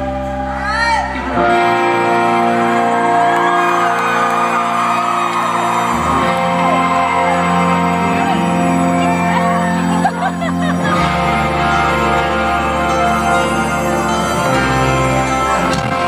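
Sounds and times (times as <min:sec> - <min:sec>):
bass line: 0:00.0 - 0:16.0
crowd whooping and screaming: 0:00.0 - 0:16.0
keyboard or organ chords: 0:06.2 - 0:16.0.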